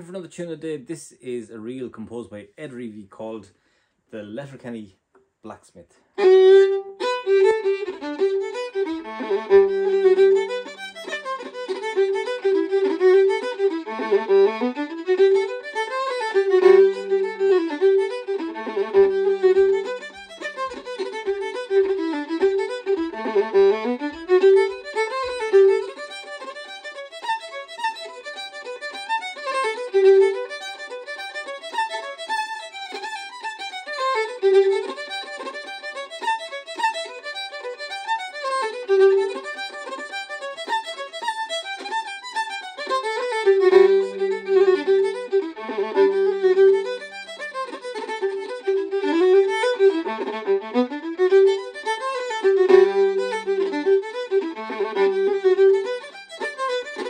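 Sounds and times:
solo fiddle playing a reel: 0:06.2 - 0:57.0.

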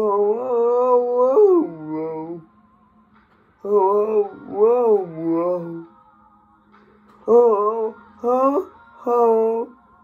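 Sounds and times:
man singing a held vowel: 0:00.0 - 0:02.5, 0:03.6 - 0:05.9, 0:07.2 - 0:09.8.

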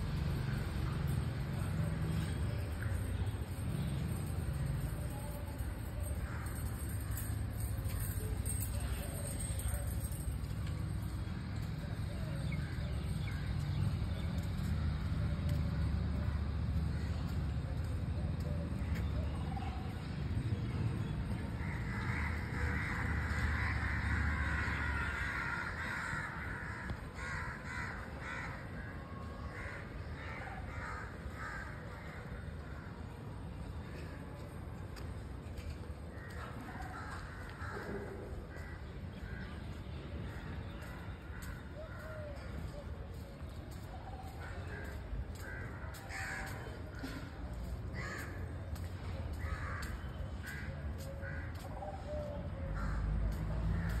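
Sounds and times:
crows cawing: 0:21.6 - 0:32.9, 0:36.1 - 0:39.5, 0:44.4 - 0:48.5, 0:49.4 - 0:54.0.

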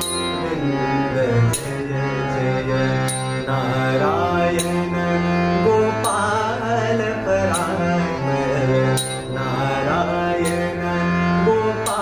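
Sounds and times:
harmonium chords: 0:00.0 - 0:12.0
man singing: 0:00.0 - 0:12.0.

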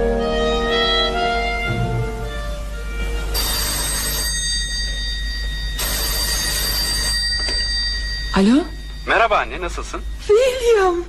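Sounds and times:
telephone ringing: 0:03.3 - 0:11.0.

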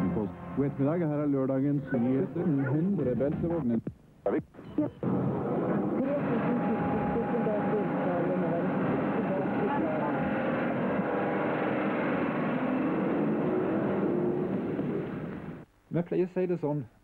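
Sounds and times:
crowd of overlapping voices: 0:00.0 - 0:03.4, 0:05.3 - 0:13.0.

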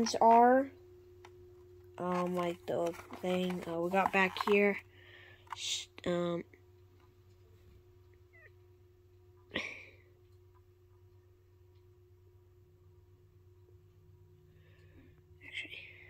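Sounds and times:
quiet steady hum: 0:00.0 - 0:16.0.

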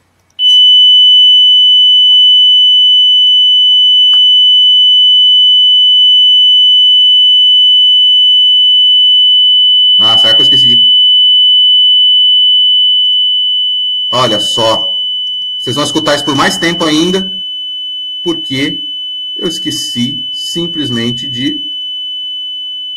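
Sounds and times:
high test tone: 0:10.0 - 0:11.0, 0:14.1 - 0:17.6, 0:18.2 - 0:22.9.

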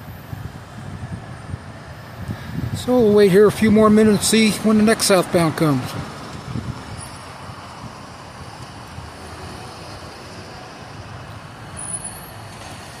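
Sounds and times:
distant traffic and rail rumble: 0:00.0 - 0:13.0.

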